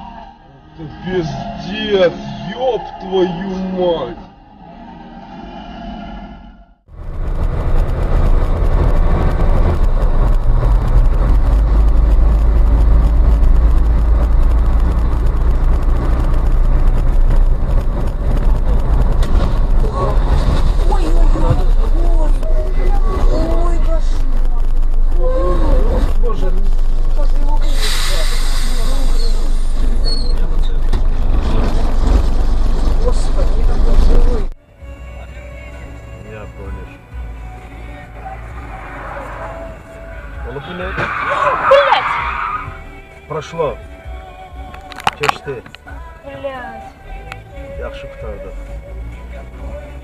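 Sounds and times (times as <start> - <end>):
voices: 0.0 - 4.8, 33.0 - 49.9
vehicle engine and road rumble: 0.0 - 50.0
hiss burst: 27.6 - 29.8.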